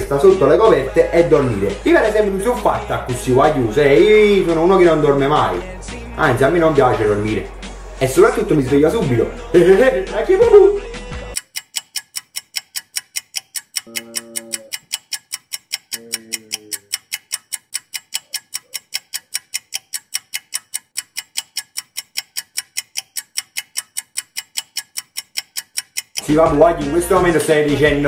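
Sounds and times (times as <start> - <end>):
clock ticking fast: 0.0 - 7.4, 11.3 - 28.0.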